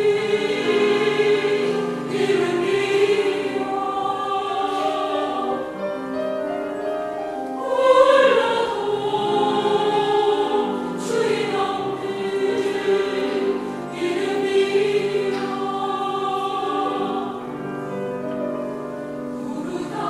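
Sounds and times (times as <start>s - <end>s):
women's choir singing chords: 0.0s - 20.0s.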